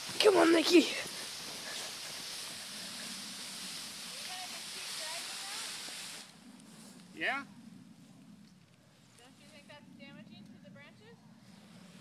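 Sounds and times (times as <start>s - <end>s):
tree dragged across wet grass: 0.0s - 7.2s.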